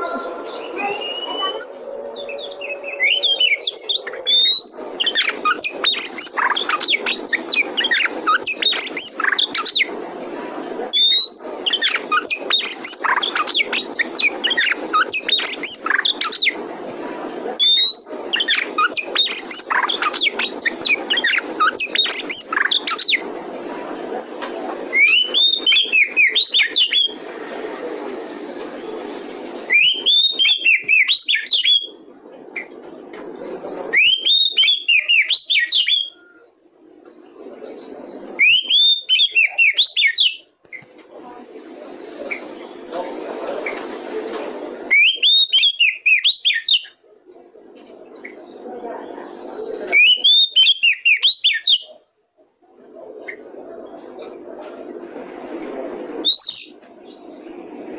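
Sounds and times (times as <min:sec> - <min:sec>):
low background noise: 0:00.0 - 0:57.9
bird singing whistles: 0:00.5 - 0:10.1, 0:11.0 - 0:16.6, 0:17.6 - 0:23.4, 0:24.9 - 0:27.2, 0:29.7 - 0:32.0, 0:34.0 - 0:36.4, 0:38.4 - 0:40.5, 0:44.9 - 0:47.0, 0:49.9 - 0:51.9.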